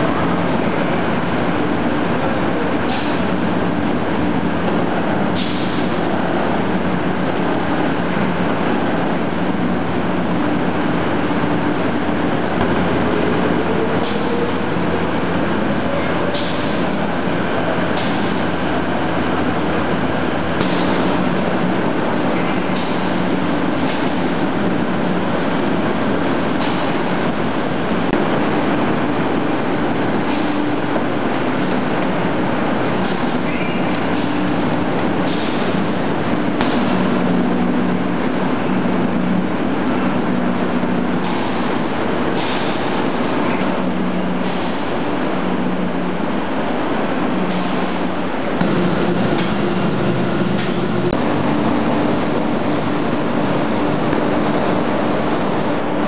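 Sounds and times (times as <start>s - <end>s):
factory machinery humming: 0.0s - 56.0s.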